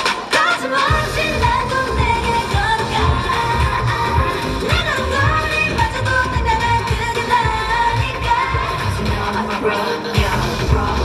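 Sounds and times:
pop backing track with kick drum: 0:00.0 - 0:11.0
female vocal: 0:00.3 - 0:11.0.

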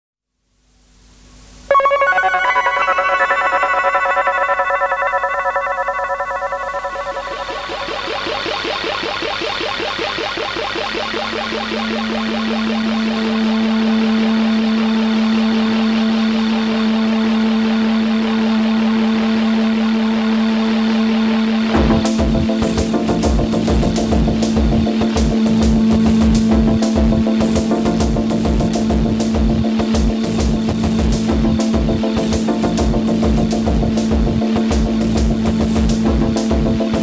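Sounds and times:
fast repeating synthesizer notes: 0:01.7 - 0:14.6, 0:21.7 - 0:37.0.

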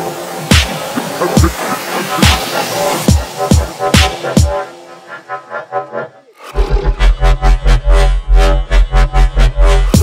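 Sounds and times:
pounding sub-bass rhythm: 0:00.0 - 0:04.8, 0:06.5 - 0:10.0
pulsing synth line: 0:00.0 - 0:10.0.

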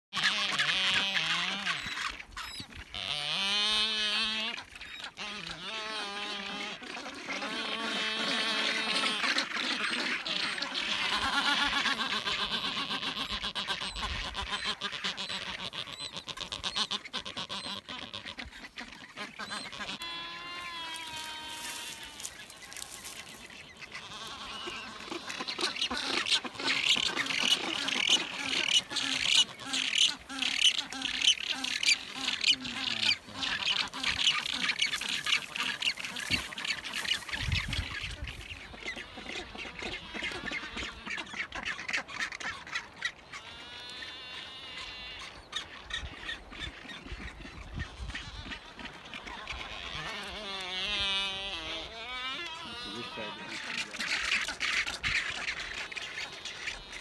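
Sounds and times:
seabird colony calling: 0:00.2 - 0:57.0.

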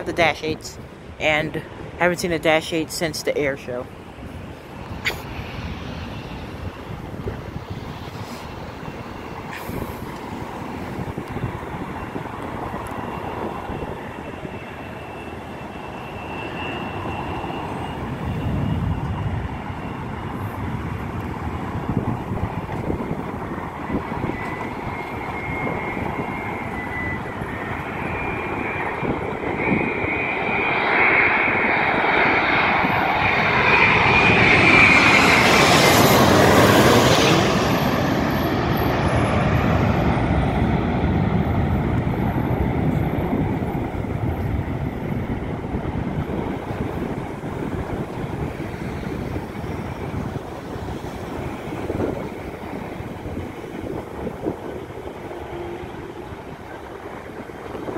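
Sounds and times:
passing road traffic: 0:00.0 - 0:30.0, 0:31.4 - 0:57.9
jet plane passing low overhead: 0:00.0 - 0:57.9.

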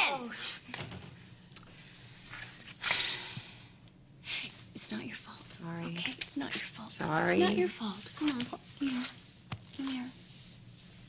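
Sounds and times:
breath: 0:01.7 - 0:04.6
woman speaking: 0:04.8 - 0:09.1.

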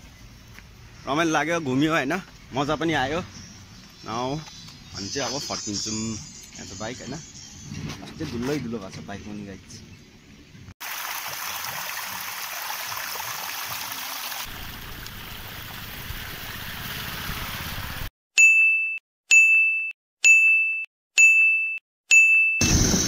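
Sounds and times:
water spilling over concrete ledge: 0:10.8 - 0:18.0
bright ding chimes: 0:18.4 - 0:22.6.

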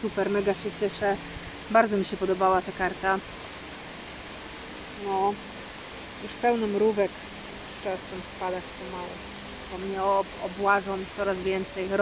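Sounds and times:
water rushing over a weir: 0:00.0 - 0:12.0.

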